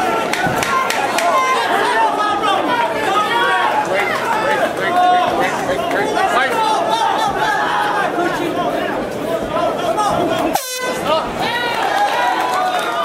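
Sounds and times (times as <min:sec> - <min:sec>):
crowd shouting and yelling: 0:00.0 - 0:13.0.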